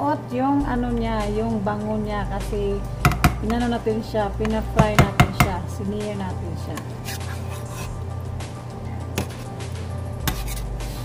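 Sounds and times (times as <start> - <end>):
ladle knocking against pot: 3.0 - 3.6, 4.4 - 5.6.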